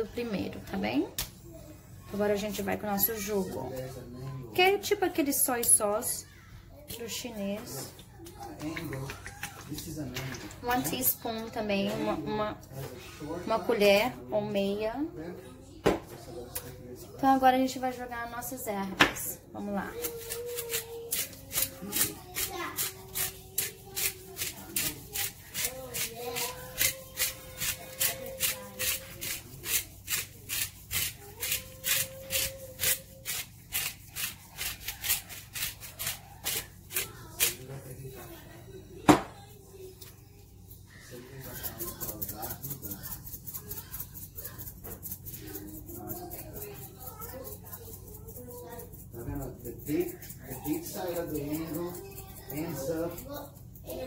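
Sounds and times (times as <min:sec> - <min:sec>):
spice jar rattling shakes: 0:41.4 - 0:53.0.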